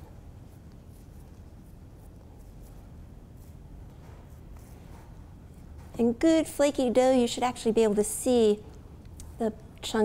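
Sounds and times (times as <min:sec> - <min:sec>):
soft dough rustles: 0:00.0 - 0:07.2
low room hum: 0:00.0 - 0:10.0.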